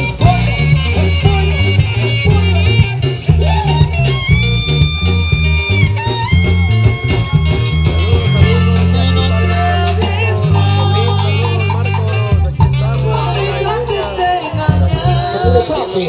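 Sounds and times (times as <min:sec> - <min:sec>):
accordion melody: 0:00.0 - 0:16.0
drums: 0:00.0 - 0:16.0
heavy bass line: 0:00.0 - 0:16.0
live band dance music: 0:00.0 - 0:16.0.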